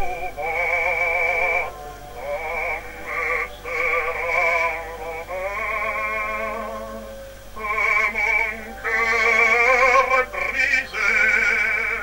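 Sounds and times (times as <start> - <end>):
man singing operatic baritone: 0.0 - 12.0.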